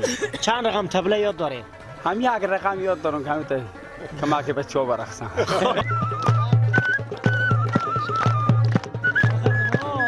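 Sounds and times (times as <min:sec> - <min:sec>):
ney flute melody: 0:05.6 - 0:10.0
hand-clapping: 0:05.8 - 0:10.0.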